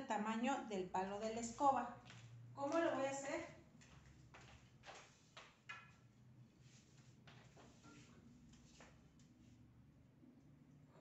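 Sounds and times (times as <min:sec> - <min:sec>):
faint footsteps: 0:01.4 - 0:09.7.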